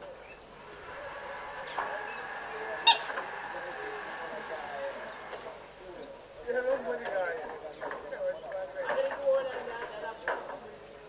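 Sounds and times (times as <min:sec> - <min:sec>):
short bird calls: 0:00.2 - 0:06.2.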